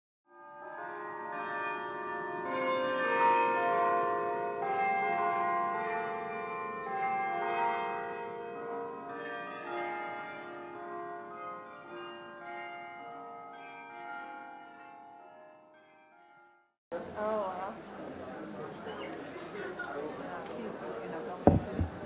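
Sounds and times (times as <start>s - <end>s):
ringing bells music: 0.3s - 16.7s.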